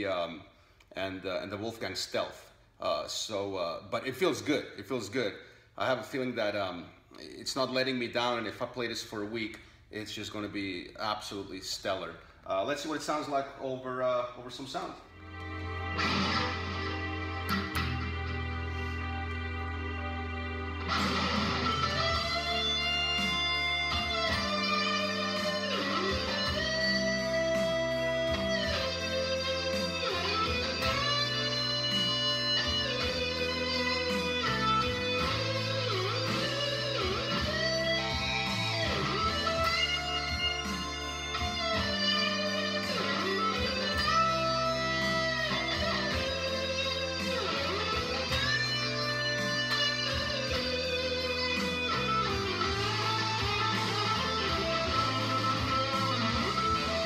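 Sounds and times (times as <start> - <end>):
backing track with bass: 13.9 - 57.0
electric guitar solo: 15.1 - 57.0.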